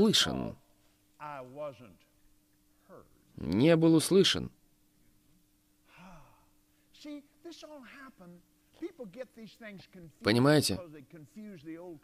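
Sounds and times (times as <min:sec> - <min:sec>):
faint steady hum: 0:00.0 - 0:12.0
person sighing: 0:05.9 - 0:06.6.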